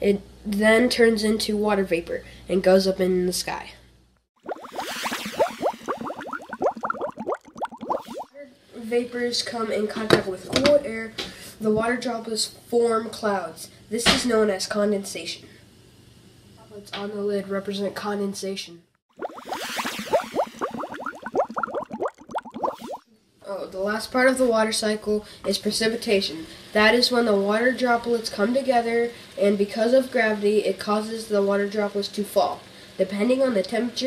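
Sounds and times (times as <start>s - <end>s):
water bubbling: 4.4s - 8.3s, 19.1s - 23.0s.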